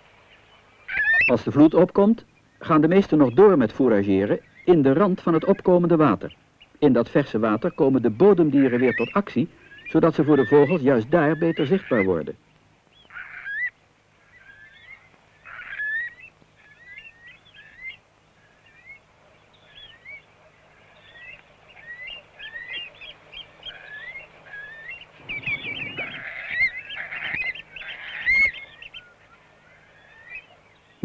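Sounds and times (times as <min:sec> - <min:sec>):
flock of shorebirds calling: 0:00.4 - 0:31.0.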